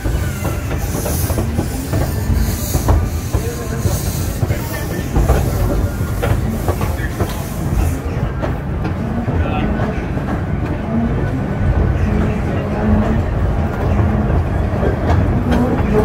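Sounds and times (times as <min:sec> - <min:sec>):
steam locomotive chuffing: 0:00.0 - 0:16.0
train wheels rumbling on track: 0:00.0 - 0:16.0.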